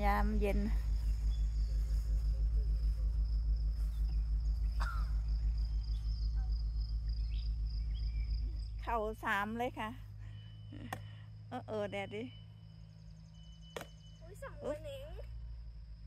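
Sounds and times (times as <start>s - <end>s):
crickets chirping: 0.0s - 16.0s
loud low pulsing hum: 0.0s - 16.0s.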